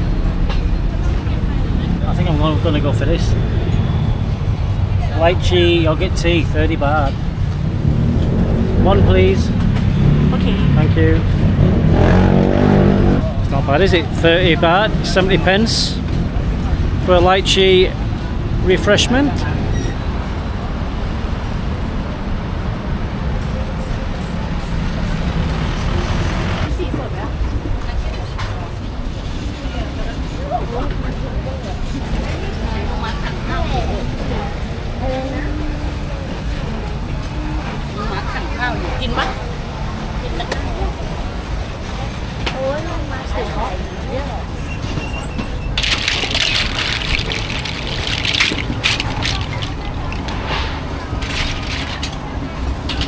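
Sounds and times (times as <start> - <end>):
indistinct voices of passers-by: 0.0 - 53.0
low rumble of traffic: 0.0 - 53.0
water streaming and splashing: 45.7 - 52.3.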